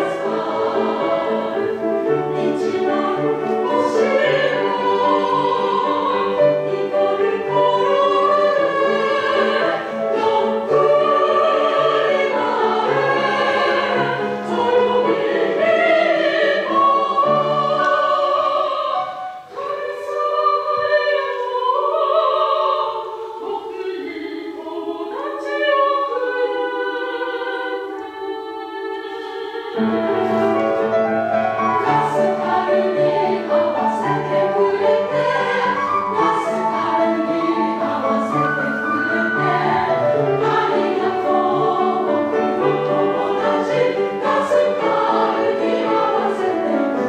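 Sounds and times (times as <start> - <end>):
grand piano: 0.0 - 47.0
women's choir singing: 0.0 - 47.0.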